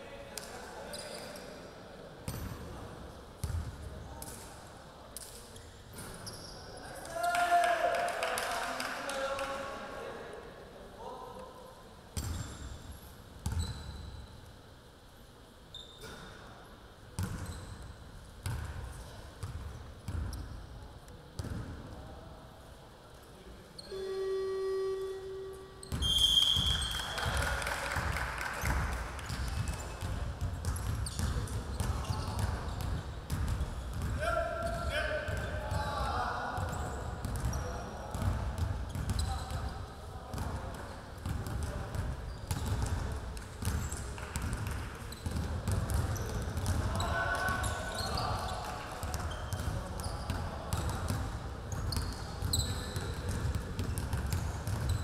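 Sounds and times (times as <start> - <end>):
basketballs bouncing on hardwood: 41.2 - 46.9, 53.2 - 55.0.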